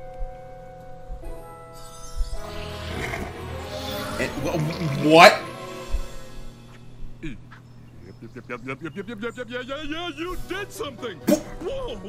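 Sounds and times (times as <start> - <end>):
background music: 0.0 - 12.0
cartoon magic spell shimmer: 1.8 - 6.6.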